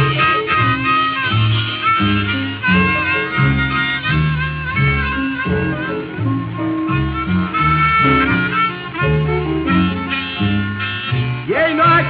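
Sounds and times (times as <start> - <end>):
acoustic guitar bass figure: 0.0 - 12.0
harmonica playing: 0.0 - 12.0.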